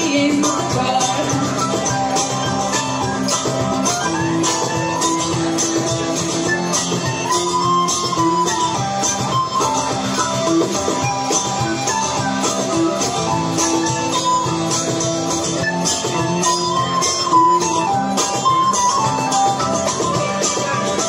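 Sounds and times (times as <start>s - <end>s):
strummed acoustic string instrument: 0.0s - 21.0s
tin whistle melody: 1.4s - 21.0s.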